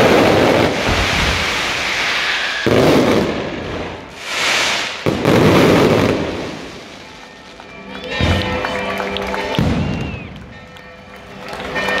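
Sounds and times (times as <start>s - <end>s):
firework bang rumbling: 0.0s - 7.0s, 9.6s - 10.3s
firework whistling glide: 0.0s - 7.3s
crowd voices: 7.0s - 12.0s
music: 7.0s - 12.0s.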